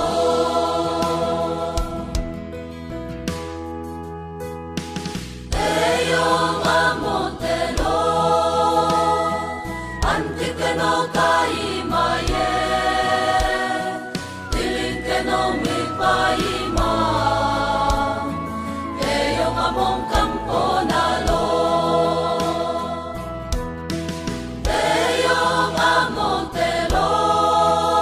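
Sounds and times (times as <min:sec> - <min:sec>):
church choir singing gospel: 0:00.0 - 0:02.5, 0:05.5 - 0:23.6, 0:24.4 - 0:28.0
instrumental backing: 0:00.0 - 0:28.0.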